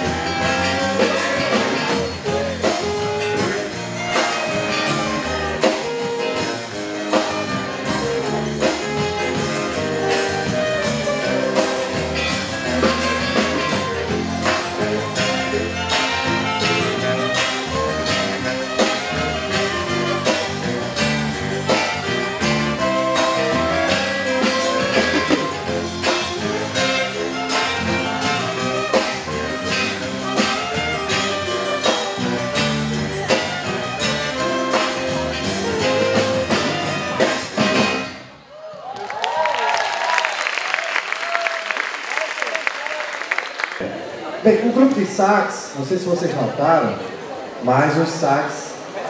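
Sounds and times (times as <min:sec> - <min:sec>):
saxophone quartet with band: 0:00.0 - 0:38.6
audience applause: 0:38.5 - 0:44.4.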